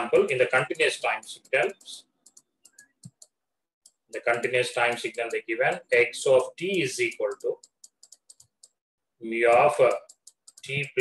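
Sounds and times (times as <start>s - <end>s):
stylus tapping on pen tablet: 0.8s - 5.8s, 6.6s - 8.8s.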